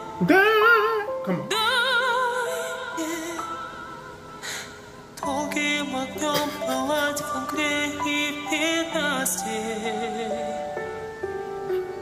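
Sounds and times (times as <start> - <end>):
man singing in high register: 0.0 - 1.8.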